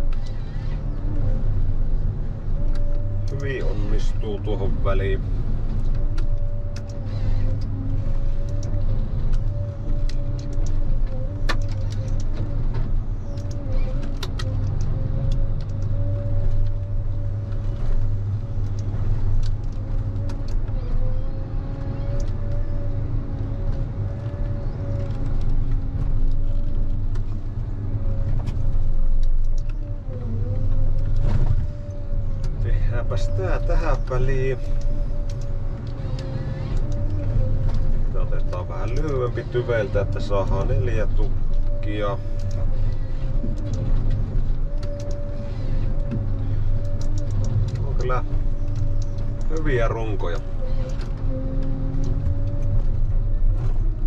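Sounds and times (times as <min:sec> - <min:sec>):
engine hum: 0:00.0 - 0:54.0
hydraulic whine: 0:29.8 - 0:54.0.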